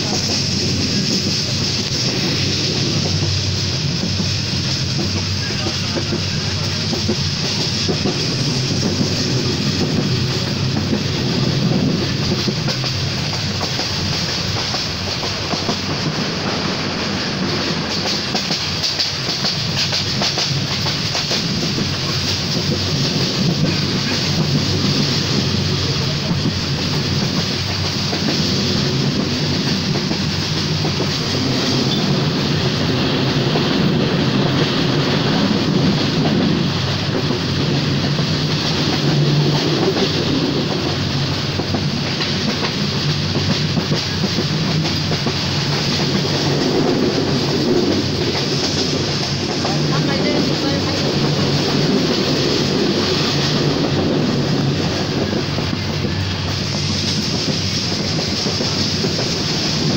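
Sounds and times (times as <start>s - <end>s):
train wheels rumbling on track: 0.0s - 59.9s.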